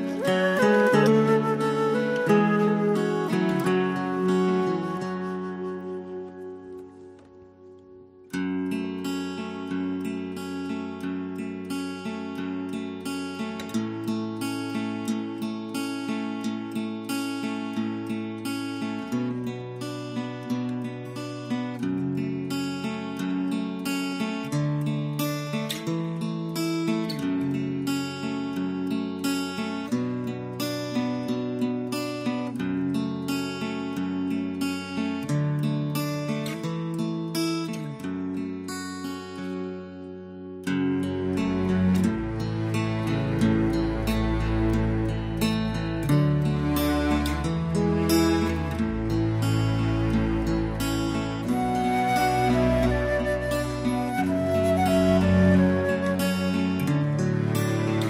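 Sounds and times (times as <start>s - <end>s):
plucked acoustic guitar: 0.0s - 58.0s.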